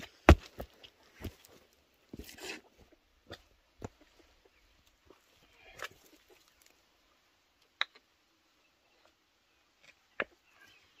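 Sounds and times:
footsteps of rubber boots: 0.0 - 4.3.

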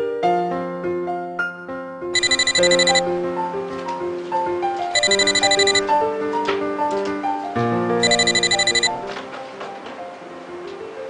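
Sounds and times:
desk telephone ringing: 2.2 - 3.1, 5.0 - 5.8, 8.0 - 9.0.

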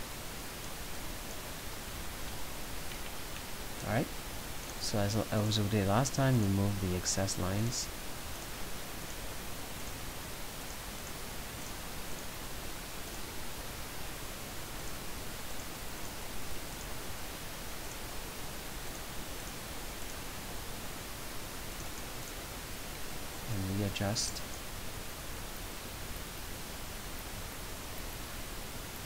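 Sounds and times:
microphone hiss: 0.0 - 29.0.

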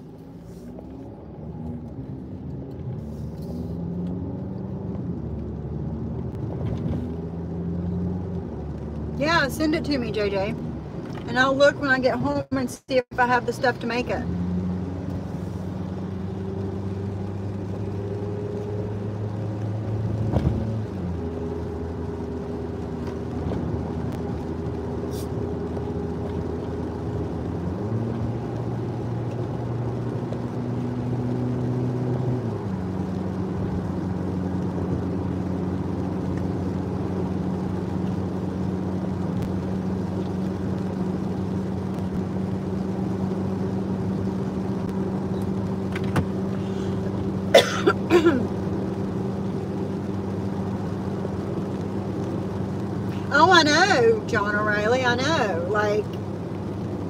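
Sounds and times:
car engine and road noise: 0.0 - 57.0.

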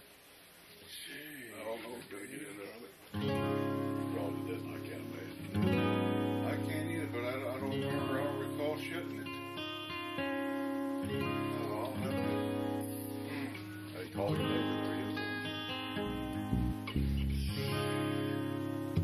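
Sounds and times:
acoustic guitar plucked and strummed: 3.1 - 19.0.

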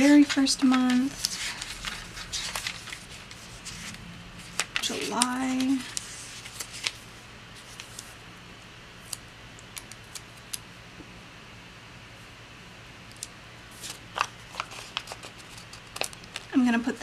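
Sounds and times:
paper rustling and ticking: 0.0 - 7.0, 7.6 - 8.1, 13.2 - 16.9
faint steady hum: 0.0 - 17.0.

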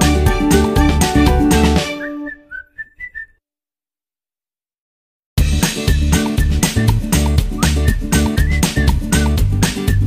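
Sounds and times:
whistled phrase of high notes: 1.8 - 3.4, 7.6 - 10.0.

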